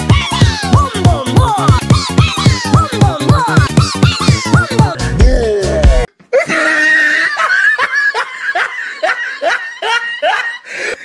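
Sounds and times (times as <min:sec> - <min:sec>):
loud laughter: 0:00.2 - 0:05.0, 0:06.3 - 0:11.0.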